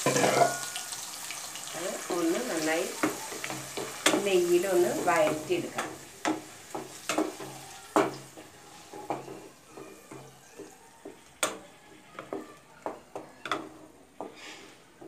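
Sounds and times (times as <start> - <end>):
faint sizzle: 0.0 - 15.0.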